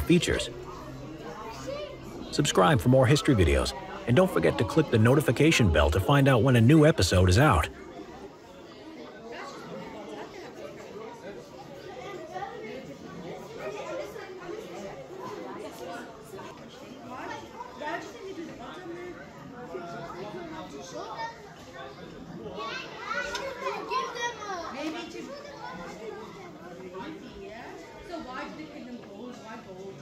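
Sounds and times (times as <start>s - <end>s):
murmur of people talking: 0.0s - 30.0s
people chattering: 0.0s - 30.0s.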